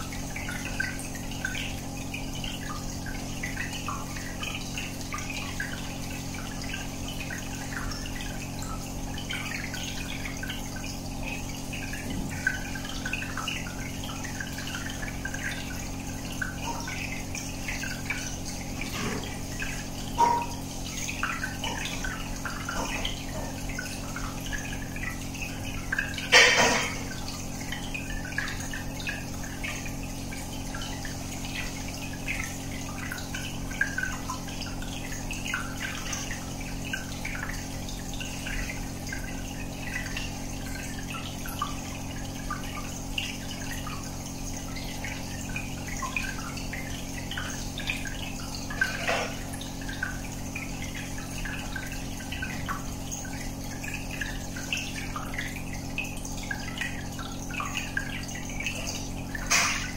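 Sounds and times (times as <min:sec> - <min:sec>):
aquarium bubbles splashing: 0:00.0 - 0:59.9.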